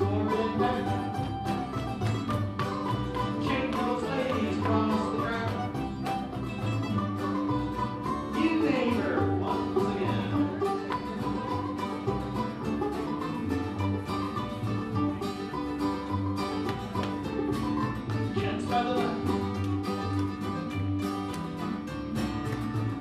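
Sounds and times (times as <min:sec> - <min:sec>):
string band playing dance tune: 0:00.0 - 0:23.0.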